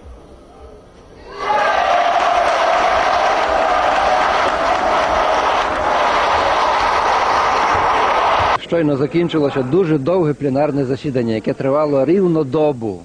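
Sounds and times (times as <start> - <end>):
crowd cheering and applauding: 1.3 - 8.6.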